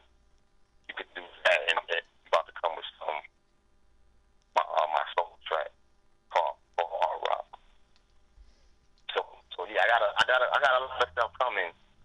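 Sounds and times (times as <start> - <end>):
voice over telephone line: 0.9 - 3.3, 4.6 - 7.6, 9.1 - 11.8.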